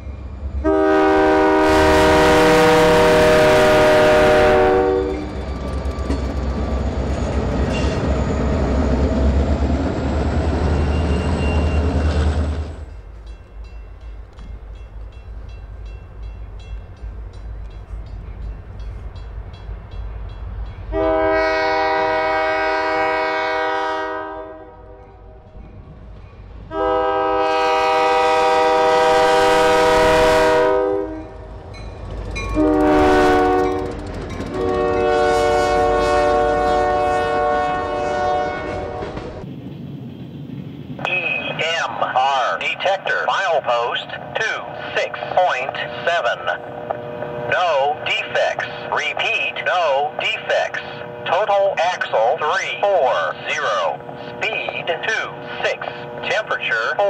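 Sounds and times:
low rumble of passing train: 0:00.0 - 0:57.0
locomotive air horn blasts: 0:00.6 - 0:05.4, 0:20.9 - 0:25.2, 0:26.7 - 0:31.4, 0:32.5 - 0:39.2
synthesized voice over radio scanner: 0:41.0 - 0:46.6, 0:47.5 - 0:57.0.

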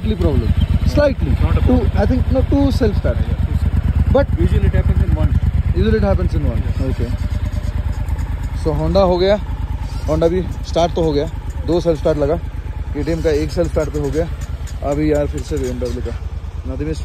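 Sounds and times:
motorcycle engine idling: 0:00.0 - 0:17.0
voices: 0:00.0 - 0:17.0.

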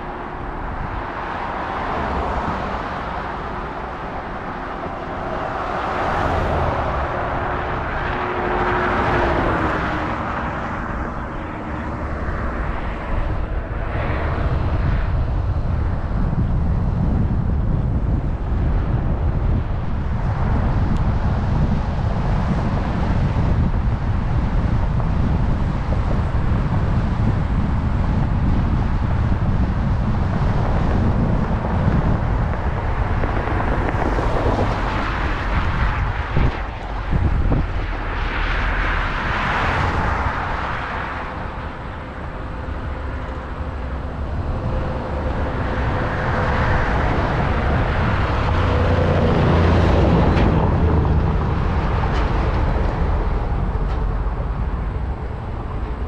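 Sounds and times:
vehicle passing by: 0:00.0 - 0:15.8, 0:29.4 - 0:56.0
wind rumble on microphone: 0:00.0 - 0:56.0.

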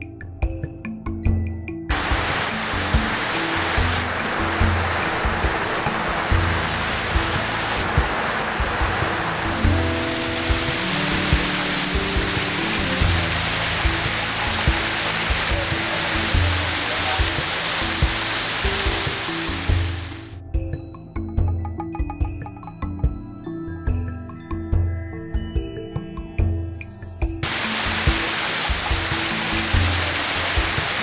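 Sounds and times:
background music with steady beat: 0:00.0 - 0:31.0
waterfall rushing into pool: 0:01.9 - 0:20.4, 0:27.4 - 0:31.0.

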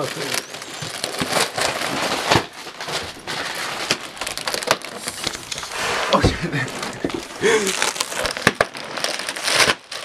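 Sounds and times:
foil balloon crinkling: 0:00.0 - 0:10.0
rush of gas noise: 0:05.0 - 0:07.8.

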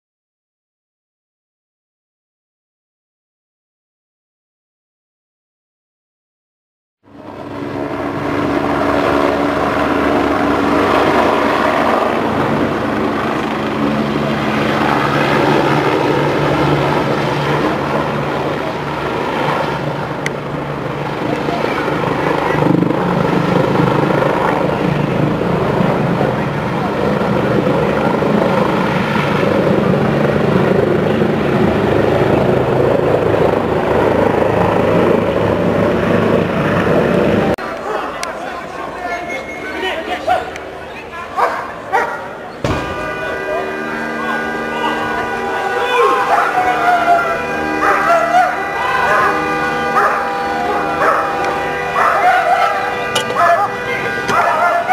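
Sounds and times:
helicopter hovering overhead: 0:07.0 - 0:54.9
voices: 0:08.6 - 0:28.9, 0:36.7 - 0:54.9.

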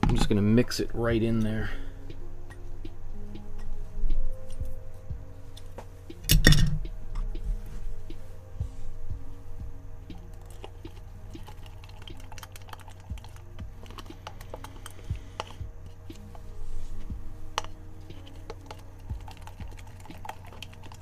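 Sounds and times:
low steady hum: 0:00.0 - 0:21.0
tool stirring thick paste: 0:10.5 - 0:21.0.

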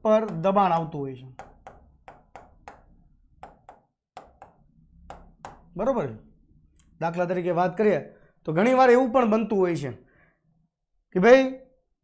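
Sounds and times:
pen tapping on whiteboard screen: 0:00.1 - 0:05.8.

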